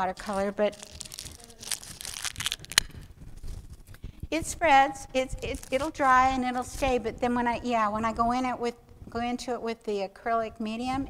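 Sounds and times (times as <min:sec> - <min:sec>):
tissue paper crinkling: 0:00.0 - 0:04.1, 0:05.2 - 0:07.0.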